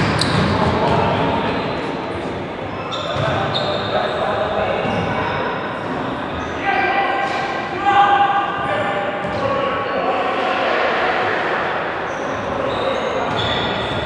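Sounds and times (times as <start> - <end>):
players calling out in echoing hall: 0.0 - 14.0.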